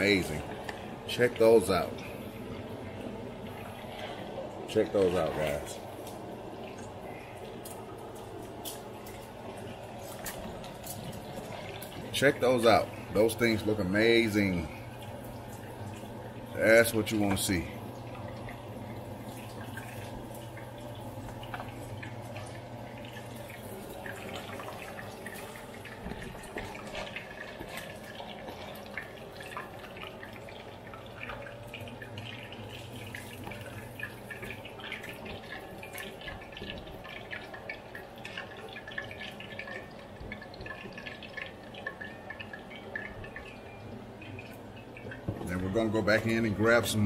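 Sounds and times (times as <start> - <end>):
steady low hum: 0.0 - 47.0
hot oil sizzling and popping: 5.1 - 46.2.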